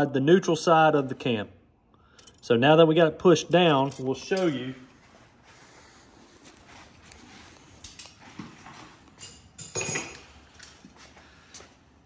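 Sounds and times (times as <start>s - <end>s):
metal tools clinking: 2.1s - 2.5s, 3.6s - 4.9s, 7.6s - 8.4s, 9.1s - 10.9s.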